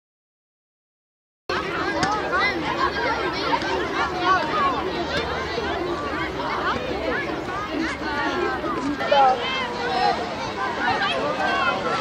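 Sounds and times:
children chattering: 0:01.5 - 0:12.0.

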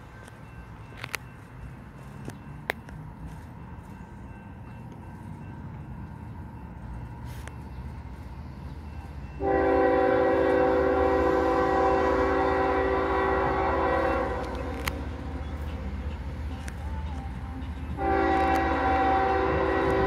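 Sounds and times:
train rumble: 0:00.0 - 0:20.0
locomotive air horn blast: 0:09.4 - 0:15.0, 0:17.9 - 0:20.0.

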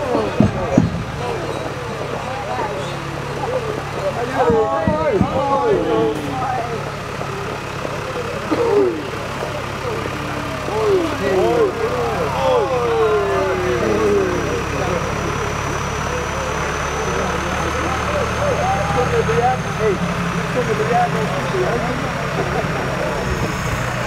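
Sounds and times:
people's voices: 0:00.0 - 0:24.0
tractor diesel engine running: 0:00.0 - 0:24.0.

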